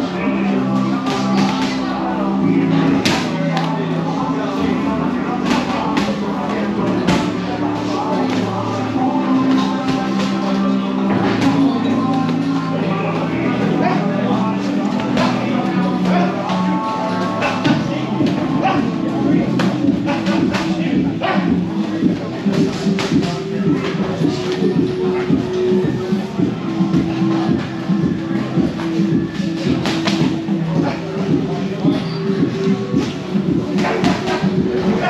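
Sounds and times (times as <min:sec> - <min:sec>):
background music: 0:00.0 - 0:35.0
many voices talking: 0:00.0 - 0:35.0.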